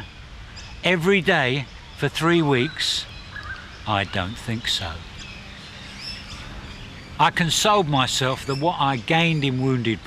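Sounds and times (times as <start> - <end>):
faint bird chirps: 0.0 - 10.0
steady low background noise: 0.0 - 10.0.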